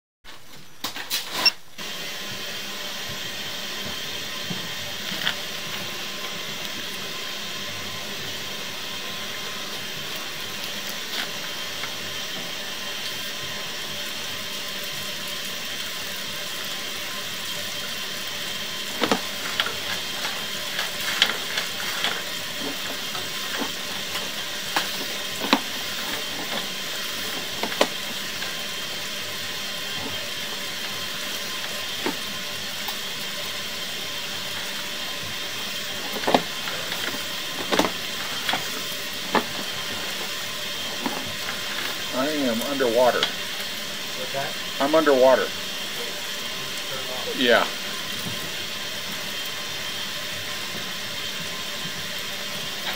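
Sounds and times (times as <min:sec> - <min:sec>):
steady hiss: 0:00.3 - 0:52.9.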